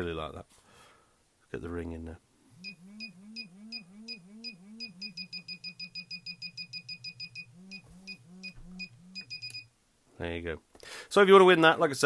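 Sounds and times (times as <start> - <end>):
low buzz: 2.4 - 9.7
metal detector beeping: 2.6 - 9.7.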